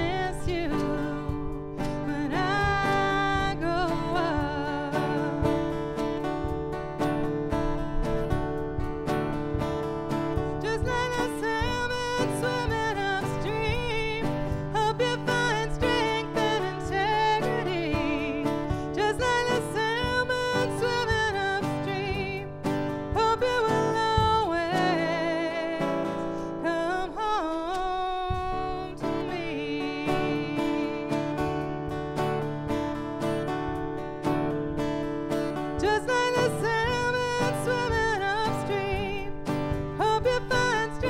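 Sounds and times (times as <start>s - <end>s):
woman singing with vibrato: 0.0s - 34.8s, 35.4s - 41.0s
acoustic guitar: 0.0s - 41.0s.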